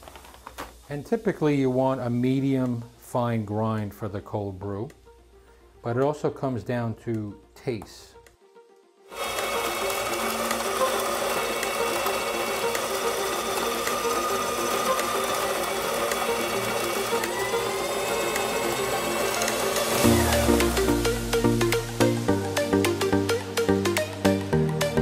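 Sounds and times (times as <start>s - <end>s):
coffee grinder grinding beans: 0.0s - 2.9s, 9.1s - 22.7s.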